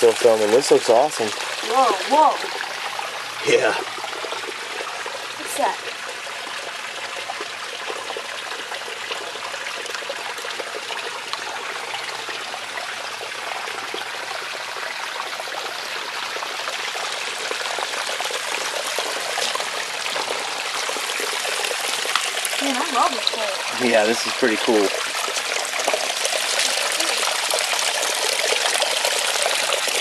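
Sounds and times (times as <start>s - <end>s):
creek water trickling over rocks: 0.0s - 30.0s.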